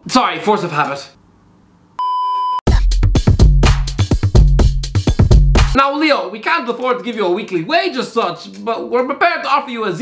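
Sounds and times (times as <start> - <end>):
electronic music with drum machine: 2.7 - 5.8.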